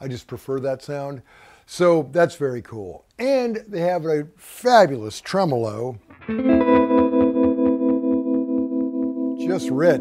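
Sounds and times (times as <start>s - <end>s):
electric guitar chord with tremolo: 6.1s - 10.0s.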